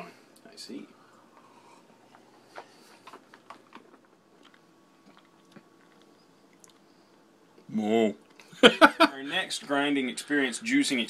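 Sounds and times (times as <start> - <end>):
man sipping juice: 1.0 - 7.2
wet mouth clicks and smacks: 2.5 - 6.8.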